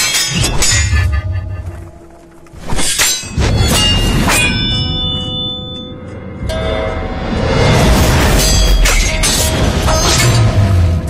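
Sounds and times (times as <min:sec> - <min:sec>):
metallic clangs of swords: 0:00.0 - 0:01.2, 0:02.6 - 0:05.9.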